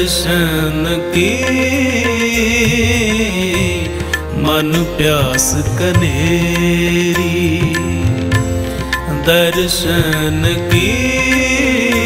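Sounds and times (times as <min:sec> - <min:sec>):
devotional hymn music with singing: 0:00.0 - 0:12.0.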